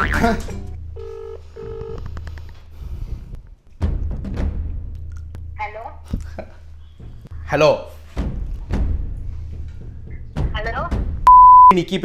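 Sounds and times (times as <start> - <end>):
phone ringback tone: 1.0 - 2.0.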